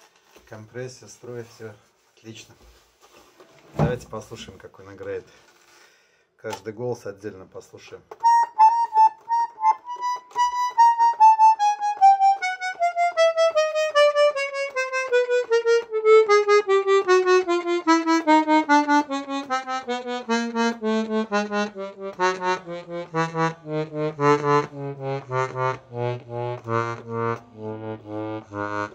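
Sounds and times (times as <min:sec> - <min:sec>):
accordion descending scale: 0:08.2 - 0:28.9.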